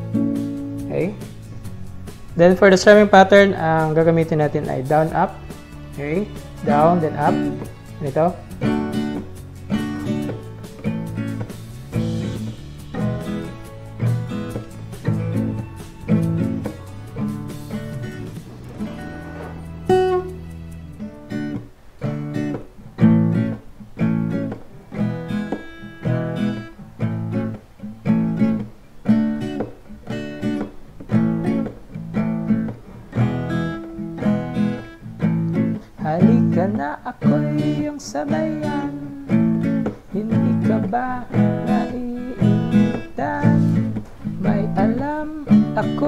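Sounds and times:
acoustic guitar strumming: 0.0s - 46.0s.

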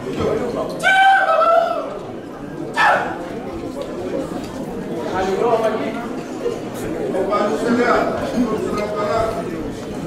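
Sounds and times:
murmur of talk: 0.0s - 10.0s.

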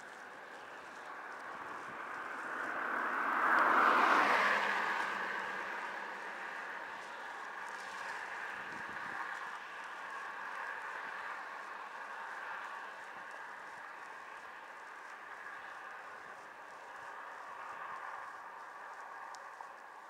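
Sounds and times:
faint steady whine: 0.0s - 20.0s
wind and road noise: 0.0s - 20.0s.

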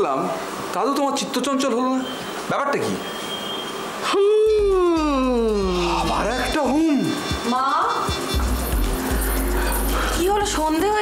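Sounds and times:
low sustained drone: 8.3s - 11.0s.

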